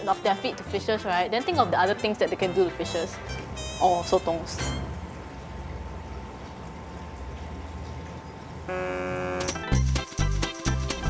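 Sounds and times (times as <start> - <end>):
low steady hum: 0.8 - 9.6
electronic background music chord: 8.7 - 11.0.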